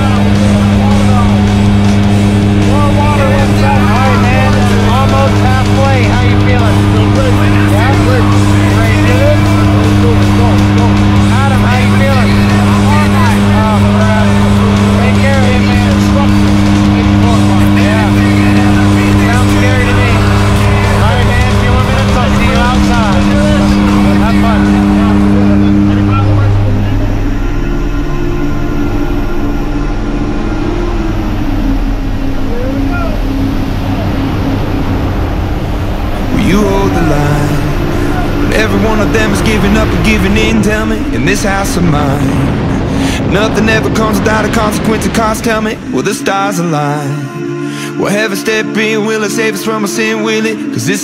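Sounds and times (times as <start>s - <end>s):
background music: 0.0s - 51.0s
propeller engines droning: 0.0s - 51.0s
voices: 0.0s - 51.0s.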